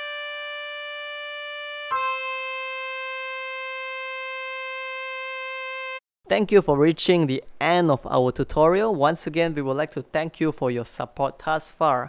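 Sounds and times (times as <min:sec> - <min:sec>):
harmonica holding a note: 0:01.8 - 0:06.0.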